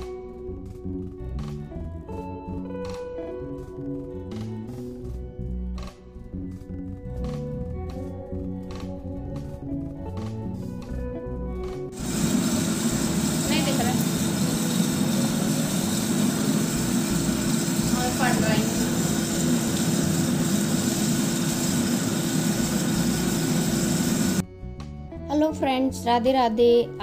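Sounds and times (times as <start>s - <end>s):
churning machine motor running: 12.0s - 24.4s.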